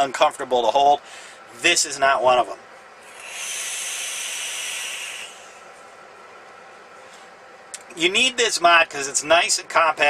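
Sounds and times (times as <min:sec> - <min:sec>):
coil sizzling and air hissing: 0:02.8 - 0:07.4.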